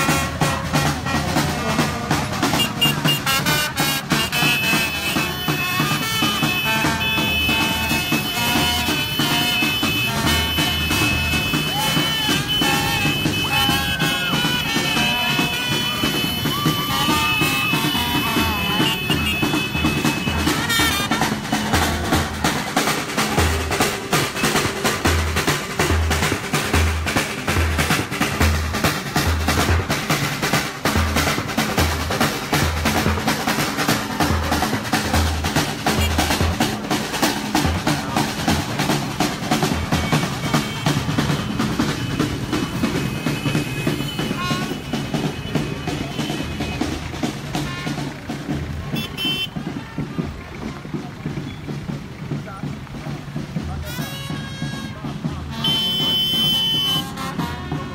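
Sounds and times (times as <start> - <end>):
brass horns playing: 0.0 - 22.6, 38.8 - 49.6, 53.8 - 57.9
bass drum beating: 0.0 - 57.9
snare drumming: 0.0 - 57.9.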